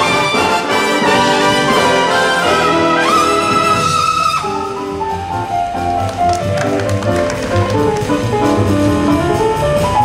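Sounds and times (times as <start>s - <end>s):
jazz rhythm section with bass: 0.0s - 10.0s.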